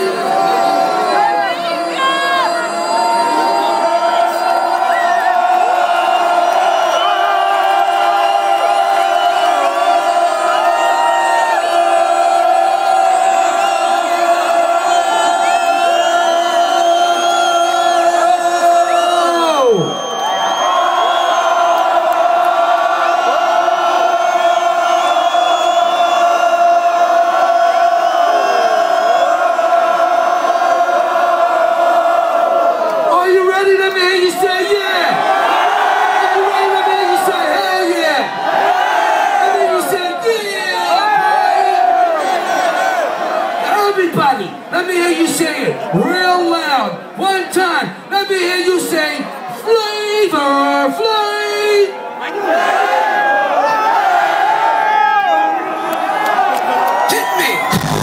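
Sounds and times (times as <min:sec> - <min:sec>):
crowd cheering and whooping: 0:00.0 - 0:33.2, 0:33.8 - 0:43.6, 0:52.1 - 0:58.0.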